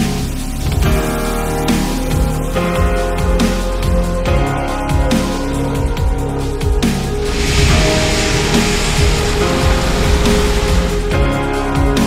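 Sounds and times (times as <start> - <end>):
stone aggregate pouring into trailer: 7.2 - 11.1
electronic music with heavy beat: 7.2 - 11.3.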